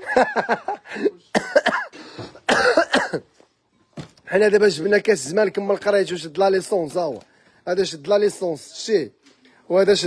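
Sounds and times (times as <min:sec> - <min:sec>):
person coughing: 0:00.9 - 0:03.3.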